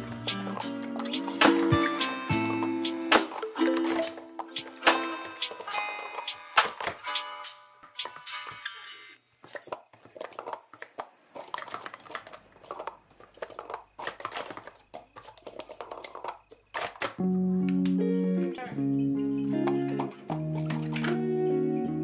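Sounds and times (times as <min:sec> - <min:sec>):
guitar music: 0:00.0 - 0:06.5, 0:17.2 - 0:22.0
plastic cups clacking on a mat: 0:09.4 - 0:17.2.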